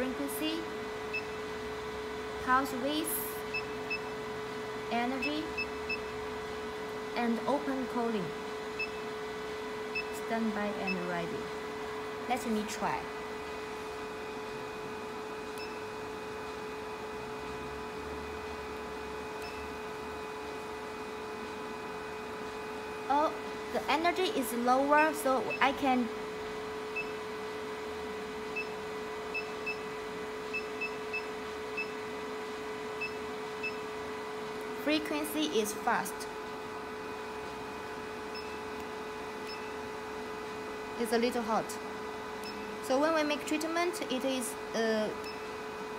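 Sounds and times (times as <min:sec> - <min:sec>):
machine humming on one tone: 0:00.0 - 0:45.9.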